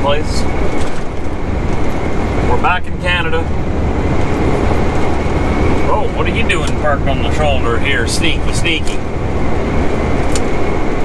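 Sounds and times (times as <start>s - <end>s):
low diesel engine drone: 0.0s - 11.0s
road and tyre noise: 0.0s - 11.0s.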